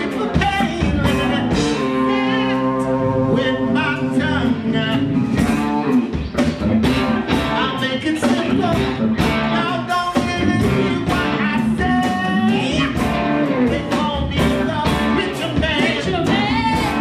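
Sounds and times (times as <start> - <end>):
person singing: 0.0 - 5.9, 6.8 - 17.0
rock band playing: 0.0 - 17.0.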